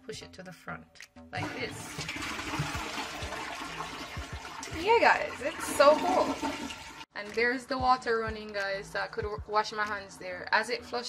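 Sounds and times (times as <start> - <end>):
tap water running into tank: 1.4 - 7.1
toilet flushing: 1.4 - 7.1.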